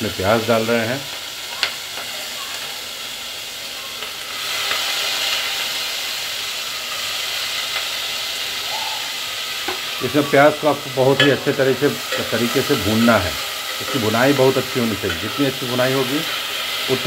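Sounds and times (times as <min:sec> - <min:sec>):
onions sizzling in hot oil: 0:00.0 - 0:17.0.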